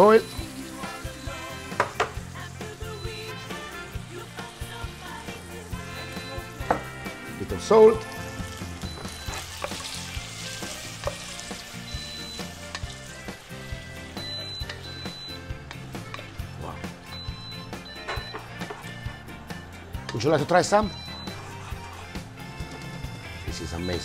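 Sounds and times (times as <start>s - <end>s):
spaghetti sizzling in oil: 0.0s - 15.4s.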